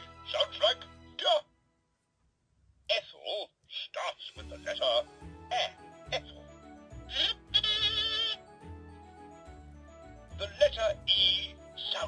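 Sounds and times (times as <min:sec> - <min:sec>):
electronic children's tune: 0:00.0 - 0:01.4, 0:04.3 - 0:12.0
short voice sounds: 0:07.1 - 0:08.4.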